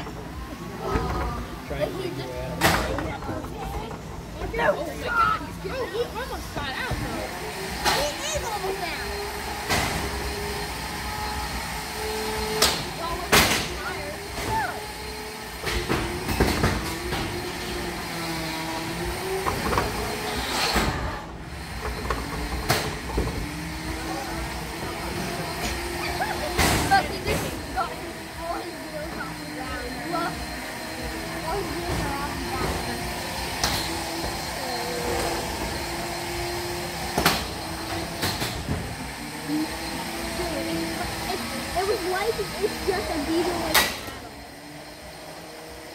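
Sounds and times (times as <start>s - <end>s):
electric motors whining: 0.0s - 45.9s.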